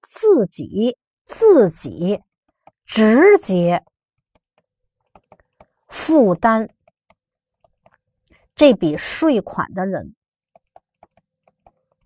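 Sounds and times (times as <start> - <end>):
stylus tapping on pen tablet: 2.1 - 8.4, 10.5 - 12.0.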